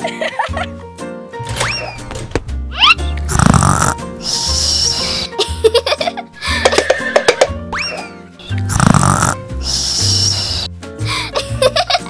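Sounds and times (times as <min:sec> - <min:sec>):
light background music: 0:00.0 - 0:12.0
cartoon snort sound effect: 0:02.8 - 0:05.4, 0:08.5 - 0:10.7.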